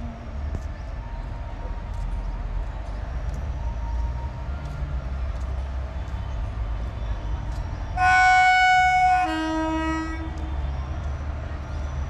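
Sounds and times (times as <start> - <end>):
locomotive horn: 7.9 - 10.9.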